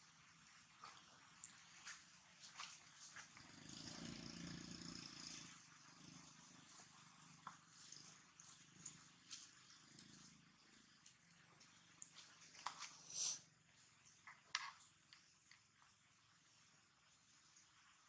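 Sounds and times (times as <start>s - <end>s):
low purr-like sound: 3.2s - 13.8s.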